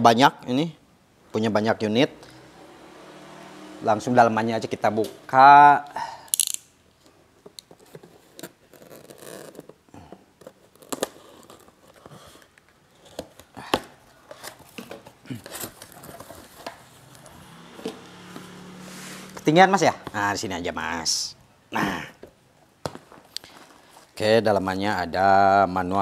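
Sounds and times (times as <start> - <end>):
cardboard rustling: 10.4 - 19.2.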